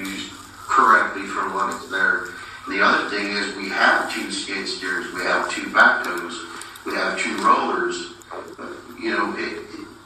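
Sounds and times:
person talking with room echo: 0.0s - 10.0s.

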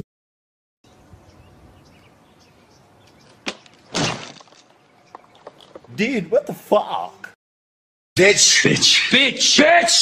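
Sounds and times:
faint outdoor background: 0.8s - 7.4s, 8.2s - 10.0s
body crashing onto plastic chair: 3.4s - 4.6s.

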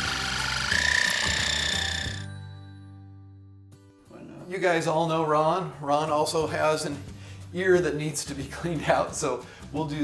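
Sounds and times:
pump high whine: 0.0s - 2.3s
soft background music: 0.0s - 10.0s.

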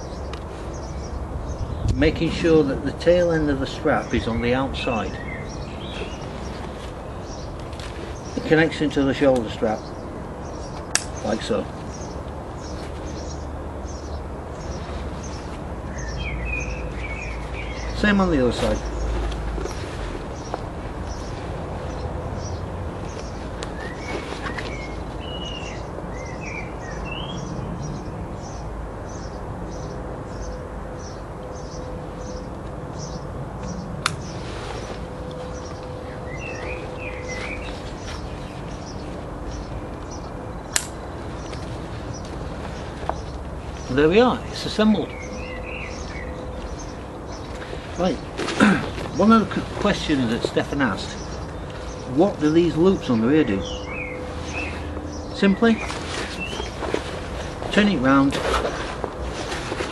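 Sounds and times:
bird chirping: 0.0s - 59.9s
outdoor background noise: 0.0s - 59.9s.

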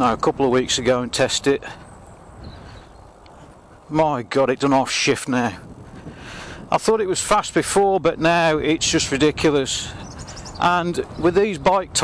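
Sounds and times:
tyres on road: 0.0s - 12.0s
wind over bike: 0.0s - 12.0s.

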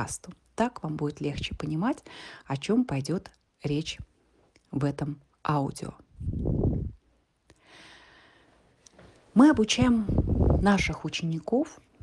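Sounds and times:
woman breathing softly: 2.0s - 2.5s, 7.5s - 9.2s.

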